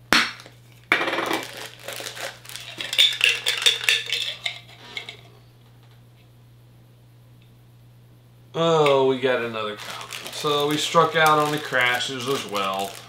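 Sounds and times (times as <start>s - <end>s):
metallic clinking and rattling: 2.2s - 5.2s.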